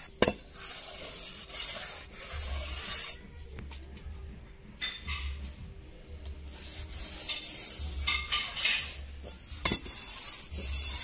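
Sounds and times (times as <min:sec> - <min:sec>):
hand smearing clay on metal lid: 0:00.0 - 0:04.1, 0:06.3 - 0:11.0.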